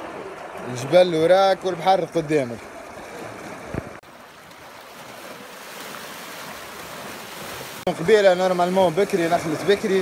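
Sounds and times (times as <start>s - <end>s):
small waves washing among rocks: 2.9s - 10.0s.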